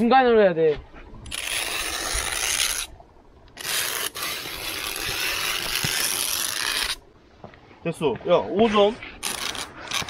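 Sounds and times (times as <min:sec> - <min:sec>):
metal rod scraping ice: 0:01.3 - 0:02.9, 0:03.6 - 0:07.0, 0:08.8 - 0:10.0.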